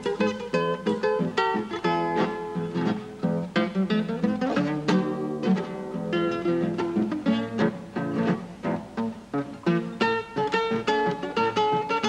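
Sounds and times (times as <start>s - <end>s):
classical guitar playing: 0.0s - 12.0s.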